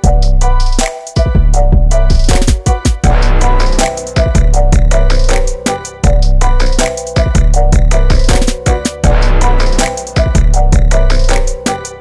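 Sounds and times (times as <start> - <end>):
music with beat and deep bass: 0.0 - 12.0.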